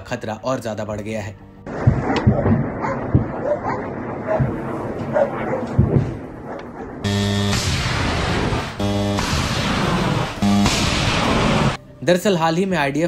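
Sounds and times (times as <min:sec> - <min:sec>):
dull thuds of distant blasts: 0:01.6 - 0:11.8
rumbling background: 0:01.6 - 0:11.8
steady buzzing hum: 0:07.0 - 0:09.5.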